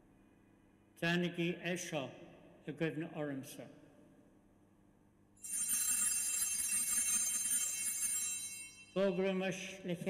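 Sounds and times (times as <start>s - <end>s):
small bells jingling: 5.4s - 9.4s.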